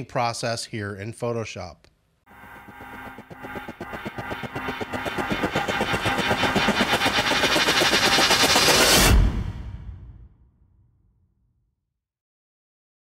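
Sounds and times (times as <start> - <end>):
sustained tones: 2.3 - 9.1.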